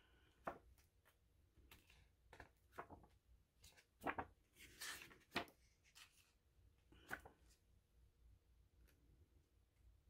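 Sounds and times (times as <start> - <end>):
paper pages rustling: 0.2 - 7.7.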